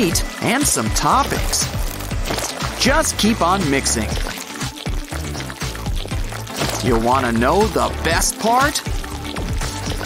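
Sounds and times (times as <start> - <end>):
background music with steady bass: 0.0 - 10.0
slime squelching wetly: 0.0 - 10.0.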